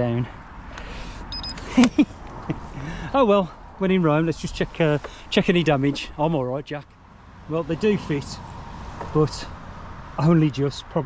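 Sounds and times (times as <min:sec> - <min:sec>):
high beep: 0:01.3 - 0:01.6
man laughing: 0:01.6 - 0:03.4.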